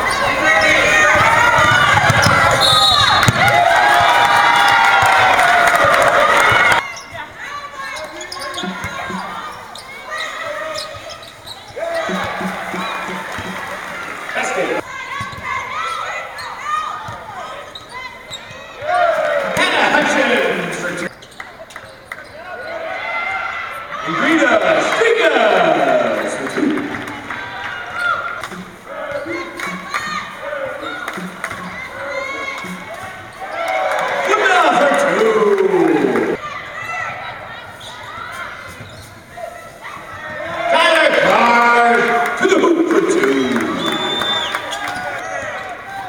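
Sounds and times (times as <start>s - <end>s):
loud crowd noise: 0.0s - 46.0s
players' voices: 0.0s - 46.0s.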